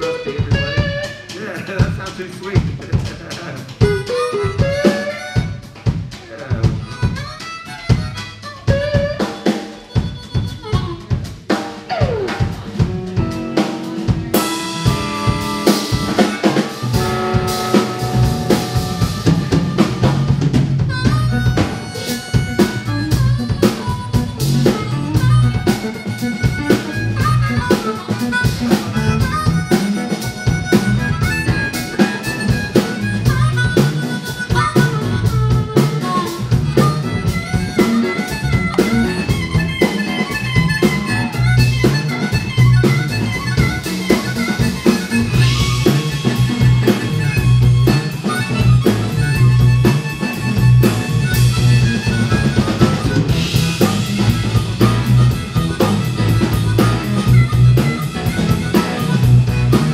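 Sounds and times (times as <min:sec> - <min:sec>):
bass guitar: 0:00.0 - 0:59.9
drum kit steady beat: 0:00.0 - 0:59.9
electric guitar: 0:00.0 - 0:59.9
harmonica lead: 0:00.0 - 0:59.9.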